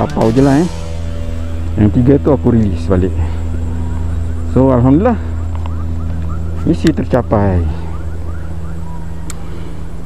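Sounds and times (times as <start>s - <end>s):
low mechanical hum: 0.9s - 10.0s.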